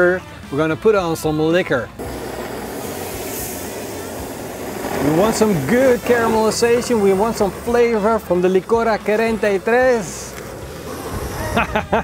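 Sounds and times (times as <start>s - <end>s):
liquid pouring: 2.0s - 8.3s
grill sizzling: 2.0s - 11.9s.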